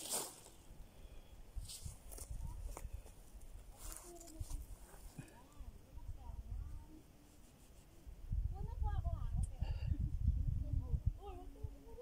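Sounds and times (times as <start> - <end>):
wind buffeting microphone: 8.1 - 12.0.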